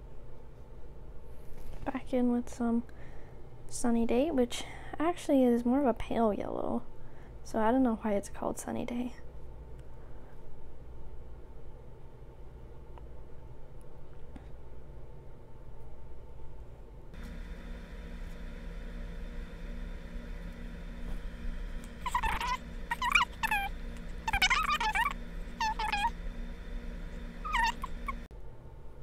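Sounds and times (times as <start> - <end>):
steady hum: 17.0 - 28.3.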